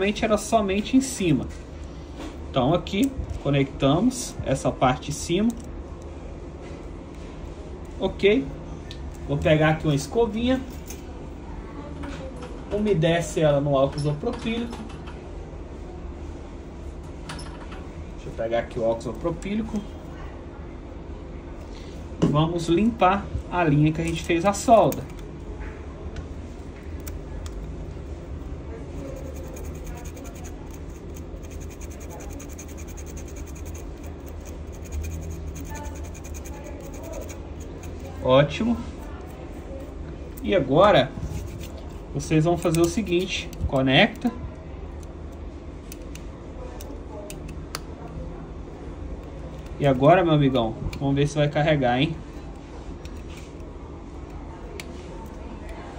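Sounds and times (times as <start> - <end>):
steady low hum: 0.0 - 55.9.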